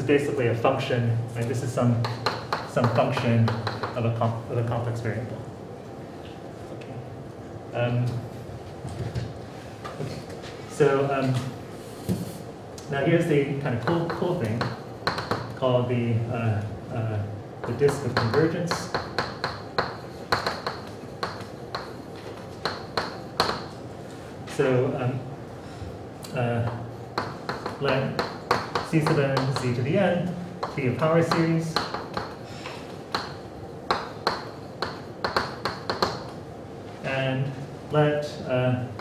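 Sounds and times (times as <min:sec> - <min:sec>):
chalk tapping on blackboard: 0:02.0 - 0:04.0, 0:13.8 - 0:15.5, 0:17.6 - 0:23.7, 0:27.2 - 0:29.8, 0:30.6 - 0:32.4, 0:33.1 - 0:36.4.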